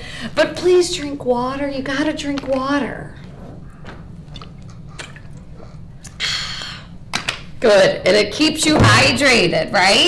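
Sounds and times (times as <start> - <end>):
low room hum: 0.0 - 10.0
person gulping water: 4.3 - 6.2.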